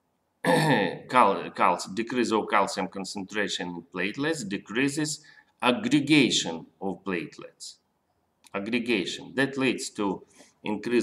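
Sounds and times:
man clearing his throat: 0.4s - 1.0s
man speaking: 0.5s - 7.9s, 8.5s - 11.0s.

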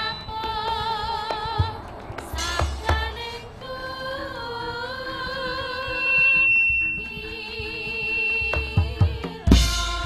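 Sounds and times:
drum strokes: 0.0s - 3.4s, 6.0s - 10.0s.

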